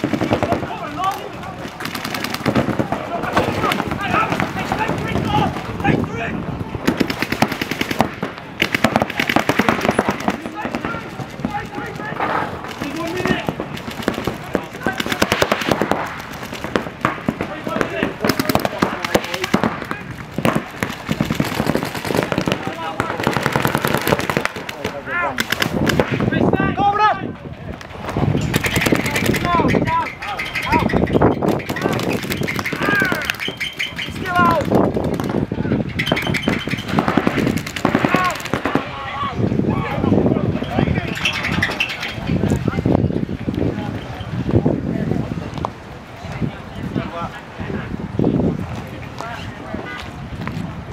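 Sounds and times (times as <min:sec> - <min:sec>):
paintball markers firing rapidly: 0:00.0 - 0:05.3, 0:06.8 - 0:26.3, 0:28.5 - 0:38.9.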